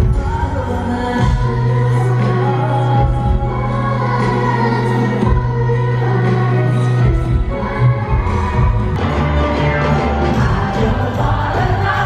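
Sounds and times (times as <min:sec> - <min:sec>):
backing choir singing: 0:00.0 - 0:12.0
live band playing: 0:00.0 - 0:12.0.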